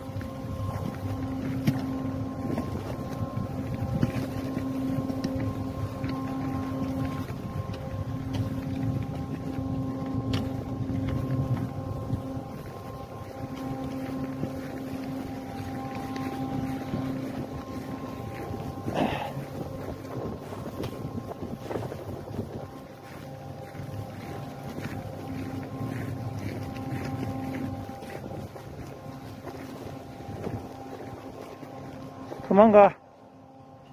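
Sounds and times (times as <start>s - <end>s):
steady machine hum: 0.0s - 33.9s
wind rumbling on microphone: 0.0s - 33.9s.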